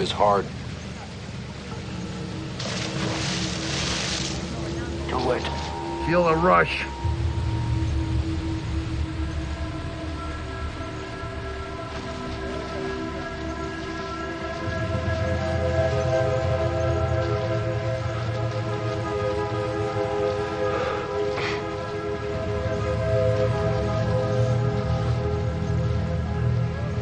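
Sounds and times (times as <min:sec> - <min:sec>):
low rumble: 0:00.0 - 0:27.0
tense film score drone: 0:00.0 - 0:27.0
rising sweep: 0:02.2 - 0:15.7.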